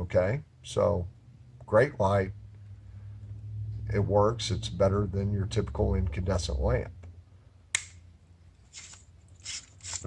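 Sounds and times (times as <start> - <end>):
lamp scraping in socket: 8.7 - 10.0.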